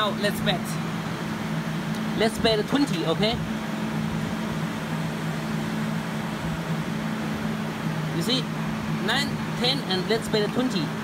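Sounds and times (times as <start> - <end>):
fan-like hiss: 0.0 - 11.0
low two-note machine drone: 0.0 - 11.0.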